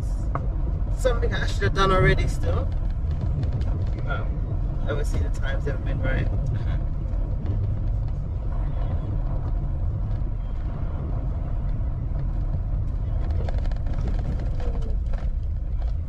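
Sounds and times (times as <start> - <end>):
car engine and tyres rumbling: 0.0 - 16.0.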